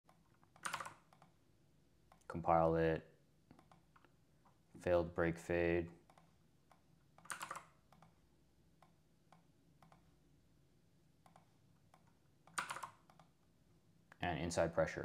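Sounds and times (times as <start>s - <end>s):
computer keyboard keystrokes: 0.1s - 1.3s, 7.2s - 8.1s, 11.3s - 13.3s.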